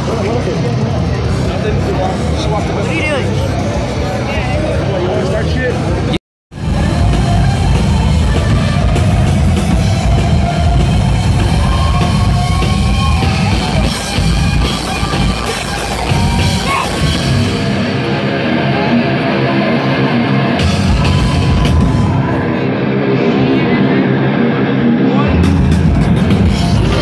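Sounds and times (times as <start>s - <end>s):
crowd chatter: 0.0s - 27.0s
distorted electric guitar: 0.0s - 27.0s
drum kit: 5.5s - 18.9s, 20.5s - 22.4s, 25.3s - 27.0s.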